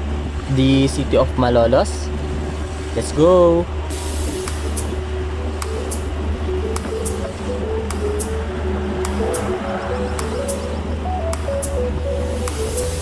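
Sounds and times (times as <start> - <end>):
car driving on highway: 0.0 - 13.0
upbeat electronic music: 4.1 - 13.0.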